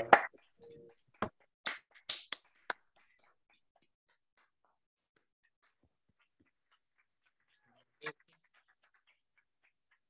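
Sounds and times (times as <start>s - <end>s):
people clapping: 0.0s - 10.0s.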